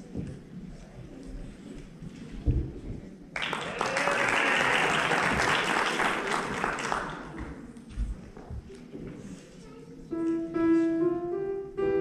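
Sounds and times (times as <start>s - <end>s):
audience applauding: 3.4s - 7.5s.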